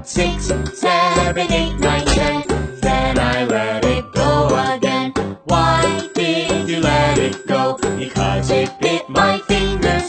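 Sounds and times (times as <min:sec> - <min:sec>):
children's song music: 0:00.0 - 0:10.0
tinkling bell-like melody: 0:05.8 - 0:09.3.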